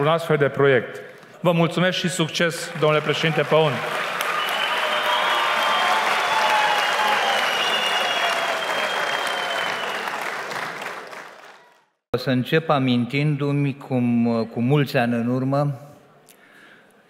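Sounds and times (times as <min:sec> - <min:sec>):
audience applause: 0:02.5 - 0:11.9.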